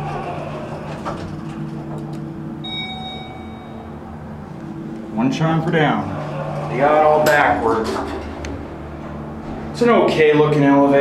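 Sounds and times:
steady low hum: 0.0s - 11.0s
elevator chime: 2.6s - 4.3s.

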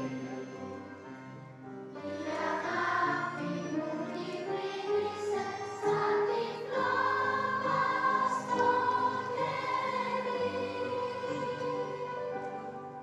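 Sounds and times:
children's choir singing: 1.9s - 13.0s.

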